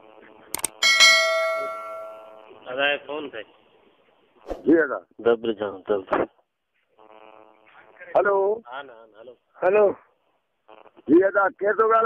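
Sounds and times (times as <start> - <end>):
quick clicks: 0.6 - 0.8
bell-like chime: 0.8 - 2.4.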